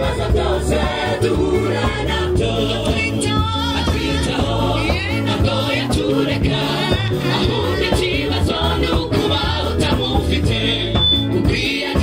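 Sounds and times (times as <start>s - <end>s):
women's choir singing gospel: 0.0s - 12.0s.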